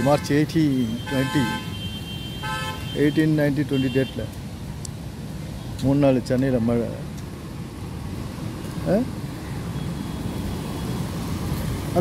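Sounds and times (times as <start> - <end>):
traffic on wet road: 0.0 - 12.0.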